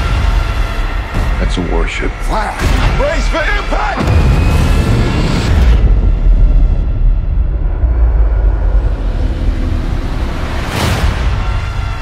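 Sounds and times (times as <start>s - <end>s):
deep rumble: 4.0s - 12.0s.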